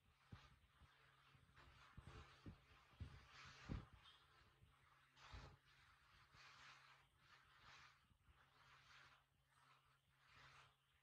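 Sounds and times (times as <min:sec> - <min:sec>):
soft rustles: 0:00.0 - 0:11.0.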